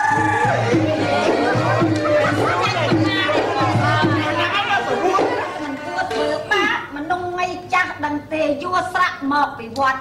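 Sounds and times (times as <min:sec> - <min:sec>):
music playing: 0:00.0 - 0:07.0
people talking and calling out: 0:00.0 - 0:08.6.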